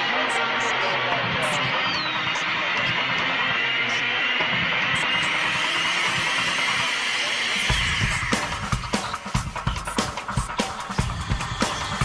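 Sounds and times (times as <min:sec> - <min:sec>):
distorted wash of sound: 0:00.0 - 0:12.0
rising tone: 0:02.0 - 0:09.5
heavy drums and bass: 0:04.6 - 0:12.0.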